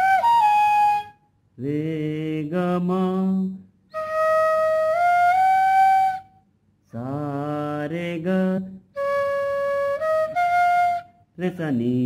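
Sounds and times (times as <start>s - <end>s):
bamboo flute held notes: 0.0s - 1.2s, 3.9s - 6.4s, 9.0s - 11.2s
man singing a note: 11.4s - 12.0s.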